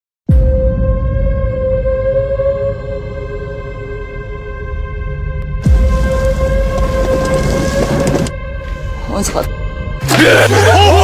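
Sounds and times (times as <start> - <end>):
deep rumble: 0.6 - 9.9.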